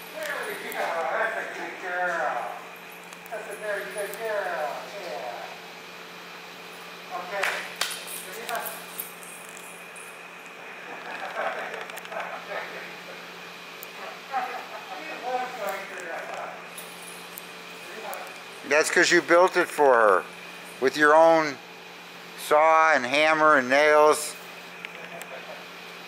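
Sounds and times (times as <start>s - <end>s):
steady hum in a hall: 0.0s - 26.0s
person talking: 0.1s - 2.6s, 17.9s - 21.6s.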